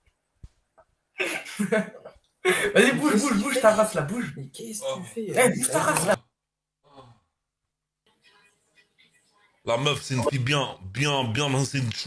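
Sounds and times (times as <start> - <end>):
man shouting: 4.9 - 6.2.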